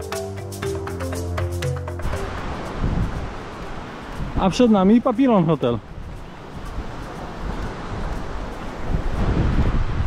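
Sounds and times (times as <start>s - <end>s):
surf washing: 0.0s - 10.0s
wind buffeting microphone: 2.2s - 10.0s.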